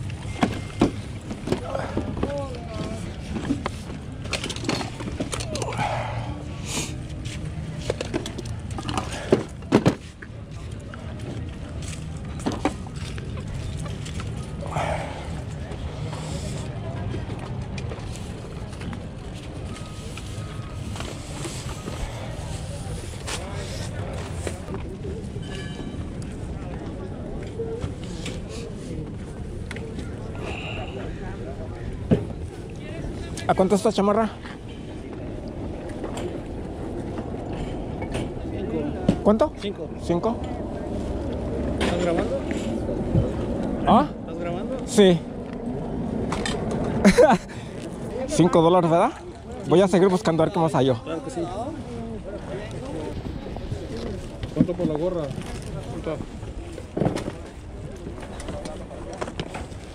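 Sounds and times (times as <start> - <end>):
indistinct voices: 0.0 - 33.5.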